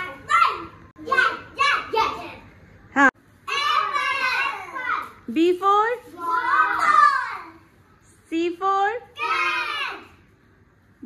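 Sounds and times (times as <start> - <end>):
children speaking: 0.0 - 2.6, 3.4 - 5.3, 6.0 - 7.7, 9.2 - 10.2.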